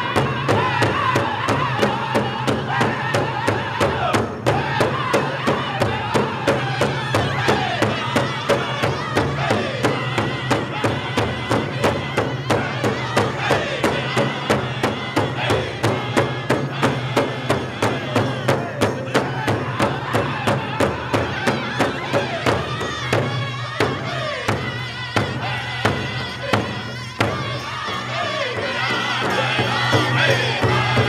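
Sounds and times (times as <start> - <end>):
large hide drum beating: 0.0 - 31.0
men singing in high voices: 0.0 - 31.0
women singing: 0.0 - 31.0.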